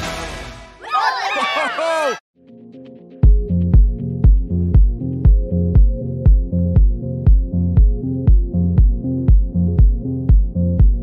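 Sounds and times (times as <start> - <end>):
children cheering and whooping: 0.8 - 2.2.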